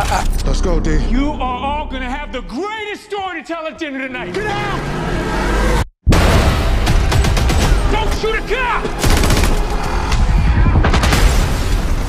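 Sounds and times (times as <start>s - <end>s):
trailer music: 0.0s - 11.2s
rapid gunfire: 6.8s - 8.3s, 8.9s - 10.1s.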